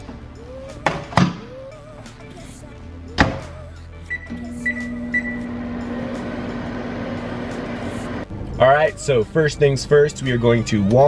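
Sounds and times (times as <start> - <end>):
short high keypad beeps: 4.1 - 5.6
microwave oven humming: 4.1 - 8.2.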